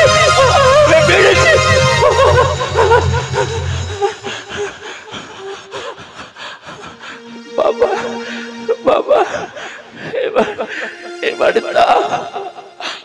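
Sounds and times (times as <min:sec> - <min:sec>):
bass-heavy electronic keyboard: 0:00.0 - 0:04.8, 0:07.0 - 0:13.0
held keyboard chord: 0:00.0 - 0:04.9, 0:07.0 - 0:13.0
person singing: 0:00.0 - 0:05.7, 0:06.9 - 0:13.0.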